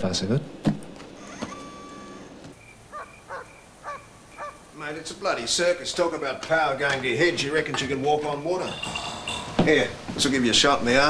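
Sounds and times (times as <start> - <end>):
animal calling: 1.2 - 5.2.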